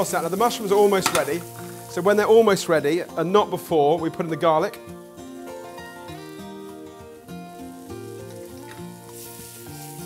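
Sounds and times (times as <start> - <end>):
background music: 0.0 - 10.0
food sizzling in a pan: 0.0 - 10.0.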